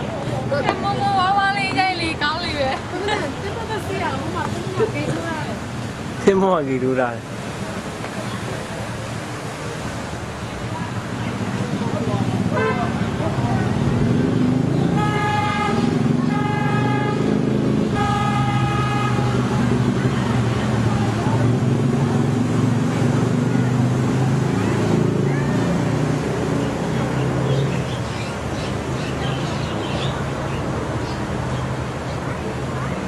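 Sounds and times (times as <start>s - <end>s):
murmur of crowd voices: 0.0s - 33.0s
horn tooting: 12.5s - 13.2s, 14.8s - 19.7s.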